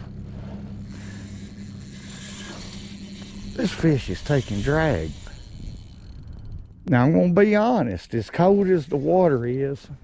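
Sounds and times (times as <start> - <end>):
fishing reel drag clicking: 0.0 - 7.2
wind rumble on microphone: 3.4 - 7.3.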